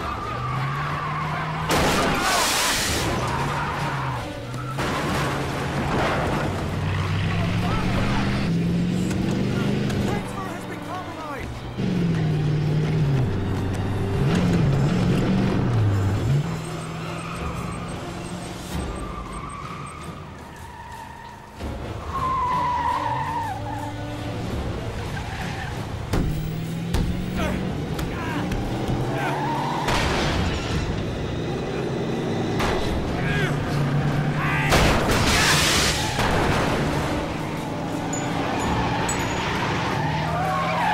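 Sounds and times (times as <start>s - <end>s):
dramatic music: 0.0s - 40.9s
tires squealing: 0.0s - 40.9s
engine revving: 6.3s - 10.5s, 11.6s - 19.4s, 24.2s - 35.2s.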